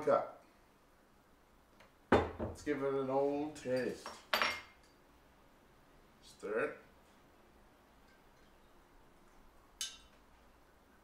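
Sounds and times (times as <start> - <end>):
glass dropper clinking glassware: 8.0 - 10.2.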